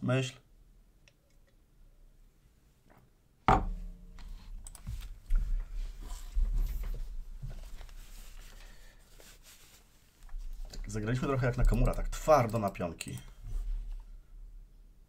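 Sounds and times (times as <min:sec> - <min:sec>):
ceramic mug set down on desk: 0:03.5 - 0:03.9
soft bumps and rustling: 0:03.6 - 0:08.5.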